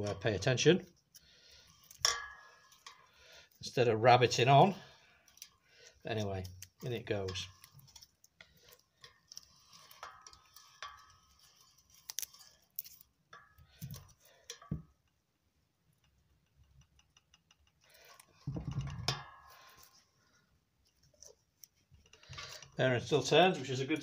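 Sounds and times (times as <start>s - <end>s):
spanner clicking and scraping metal: 16.0s - 19.2s
clatter of handling: 16.1s - 20.1s.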